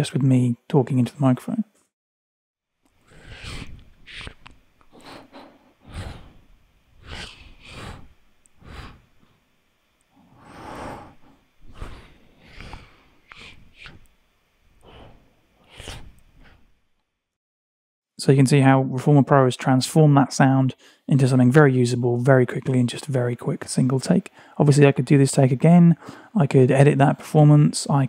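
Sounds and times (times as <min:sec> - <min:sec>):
breathy whooshing mouth sounds: 0:03.0 - 0:09.3, 0:10.2 - 0:14.1, 0:14.8 - 0:16.7.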